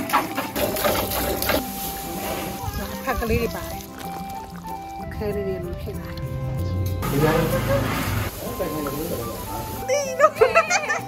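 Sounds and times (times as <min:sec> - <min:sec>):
milk squirting into a pail: 0:03.4 - 0:05.0.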